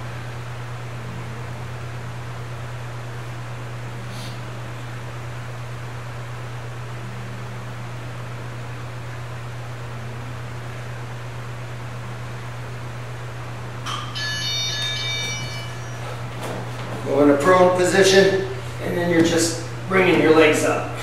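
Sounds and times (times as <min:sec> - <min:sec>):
low room hum: 0:00.0 - 0:21.0.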